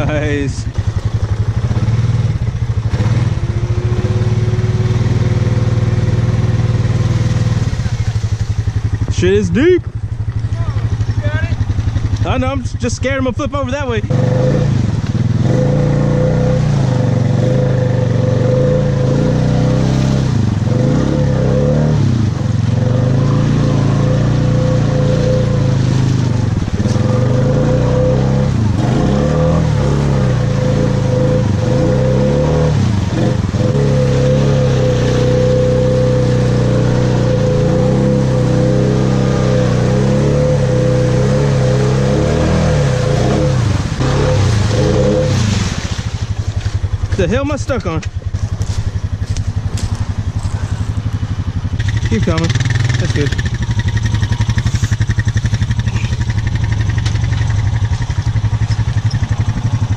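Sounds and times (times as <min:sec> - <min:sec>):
atv engine revving: 0:00.0 - 0:59.9.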